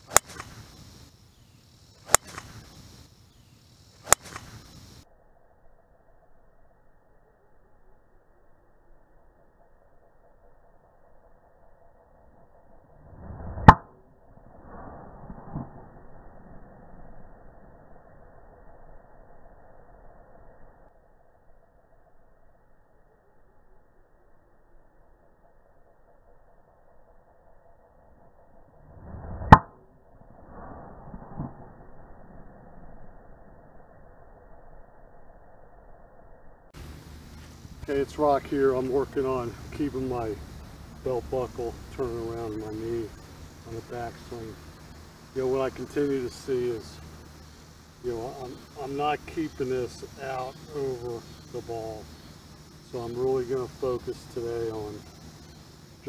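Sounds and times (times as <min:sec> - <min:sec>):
golf club striking ball: 0:00.1 - 0:00.8, 0:02.1 - 0:02.8, 0:04.0 - 0:04.6
golf club whoosh: 0:02.0 - 0:02.9.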